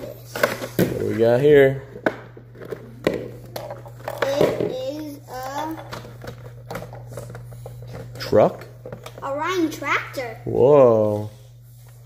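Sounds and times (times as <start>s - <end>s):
child murmuring: 4.2s - 5.9s.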